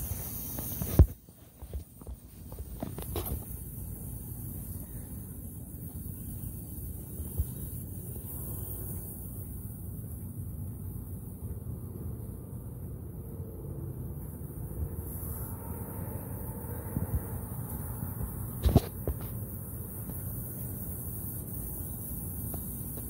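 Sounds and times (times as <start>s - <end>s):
low hum and hiss: 0.0s - 23.0s.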